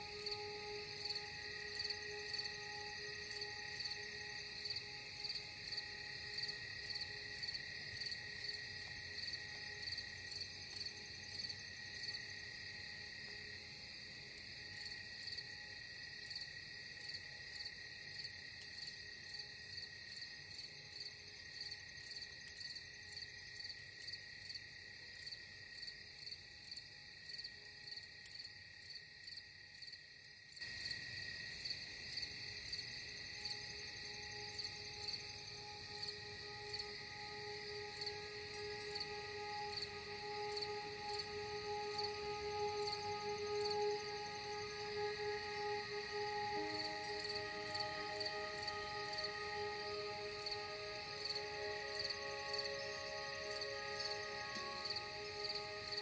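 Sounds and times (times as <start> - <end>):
crickets chirping: 0.0 - 56.0.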